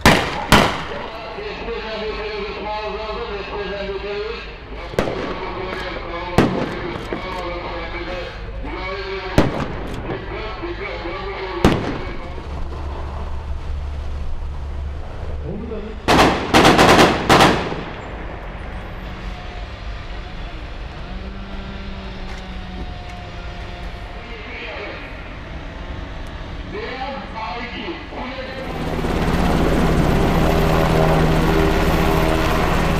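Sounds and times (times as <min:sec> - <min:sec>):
sharp bangs: 0:00.0 - 0:01.2, 0:04.9 - 0:07.3, 0:09.3 - 0:10.5, 0:11.6 - 0:12.9, 0:16.1 - 0:18.7
vehicle engine running: 0:17.8 - 0:26.9.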